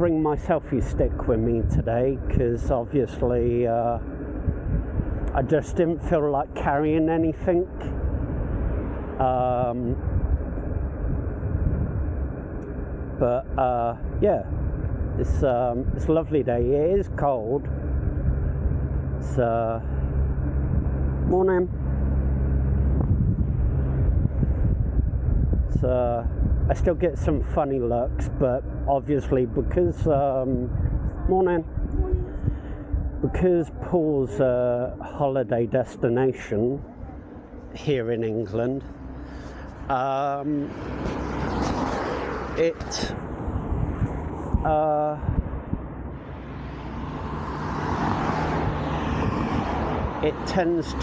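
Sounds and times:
wind on microphone: 0:00.0 - 0:35.3, 0:36.3 - 0:51.0
low hum: 0:00.0 - 0:51.0
low rumble of road traffic: 0:00.0 - 0:51.0.

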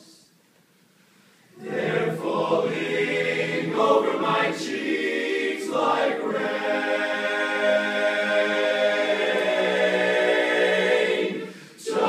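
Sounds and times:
men's chorus singing a cappella: 0:01.6 - 0:12.0.

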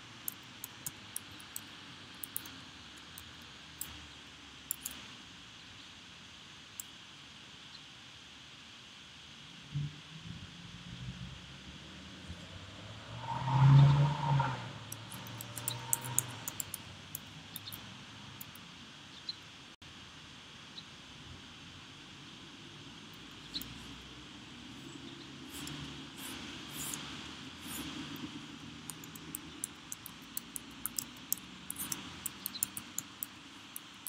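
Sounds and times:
keyboard keys clicking: 0:00.3 - 0:04.0, 0:04.7 - 0:05.0, 0:14.9 - 0:17.8, 0:27.7 - 0:34.0.

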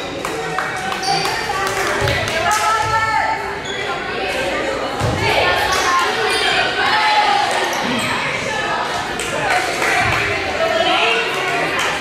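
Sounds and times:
echoing chatter of people: 0:00.0 - 0:12.0.

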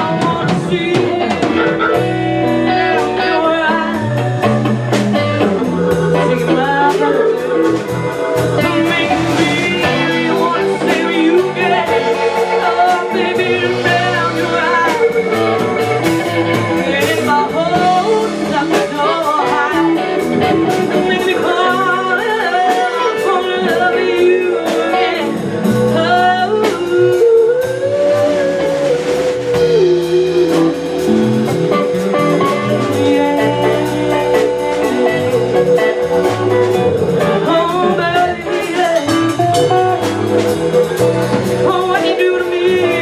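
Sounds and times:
live blues band playing: 0:00.0 - 0:43.0
woman singing blues: 0:00.0 - 0:43.0.

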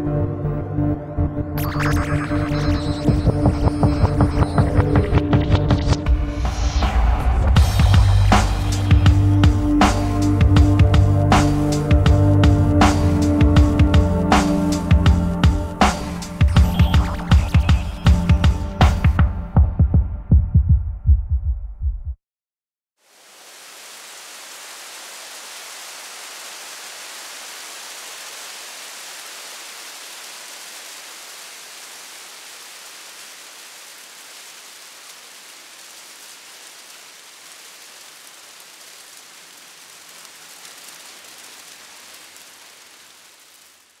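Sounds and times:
electronic music with heavy beat: 0:01.6 - 0:20.6.

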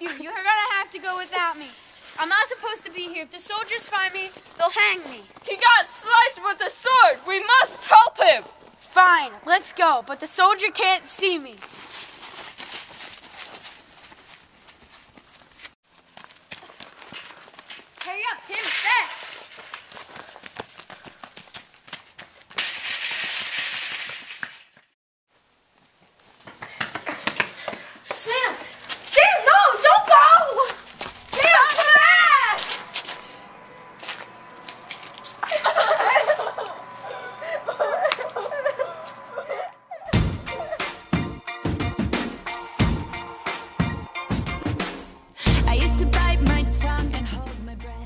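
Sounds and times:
young people's voices: 0:00.0 - 0:11.6, 0:28.2 - 0:32.8.

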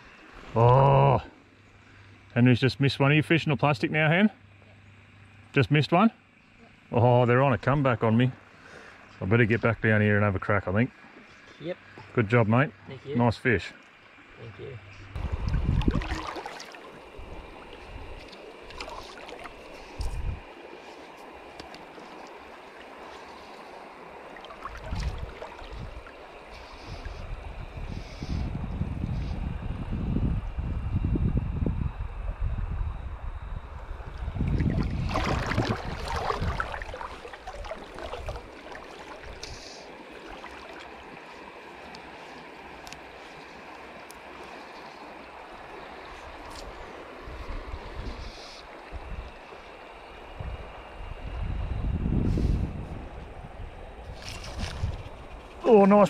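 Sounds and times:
wind buffeting microphone: 0:15.1 - 0:16.3, 0:19.8 - 0:20.5, 0:24.6 - 0:38.6, 0:47.3 - 0:49.4, 0:50.3 - 0:55.6
river water flowing over rocks: 0:16.0 - 0:26.5, 0:35.2 - 0:47.3.

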